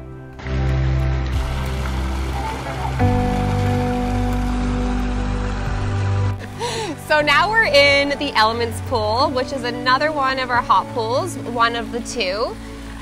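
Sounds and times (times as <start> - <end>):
background music sustained chords: 0.0 - 13.0
running water rushing: 0.4 - 13.0.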